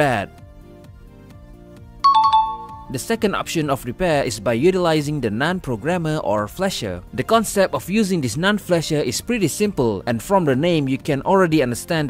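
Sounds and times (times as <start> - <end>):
quiet background music: 0.0 - 12.0
electronic chime with two-note ding: 2.0 - 3.0.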